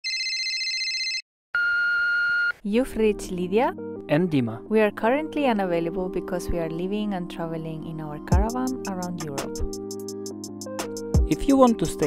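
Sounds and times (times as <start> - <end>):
electronic telephone ringing: 0.0 - 2.6.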